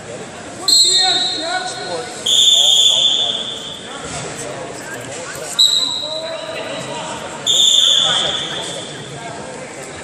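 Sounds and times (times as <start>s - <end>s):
voices: 0.0s - 10.0s
referee's whistle blast: 0.6s - 3.9s, 5.6s - 6.4s, 7.5s - 8.9s.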